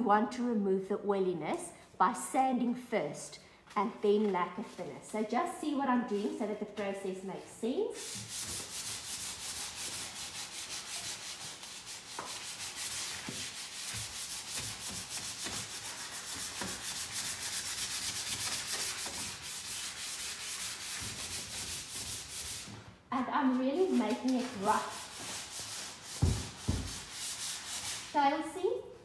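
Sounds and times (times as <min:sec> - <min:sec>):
sandpaper rubbing on plastic: 0:08.0 - 0:22.8, 0:23.5 - 0:28.2.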